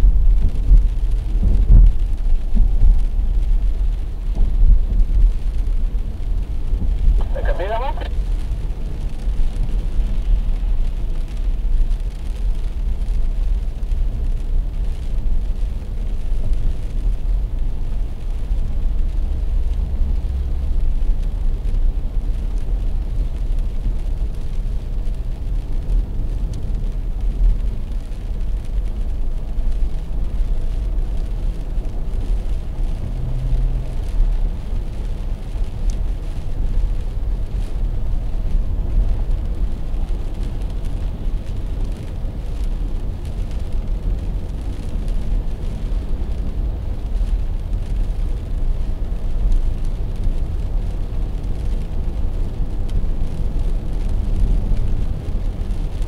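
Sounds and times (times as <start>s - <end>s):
car engine rumble: 0.0s - 56.0s
tyres on wet road: 0.0s - 56.0s.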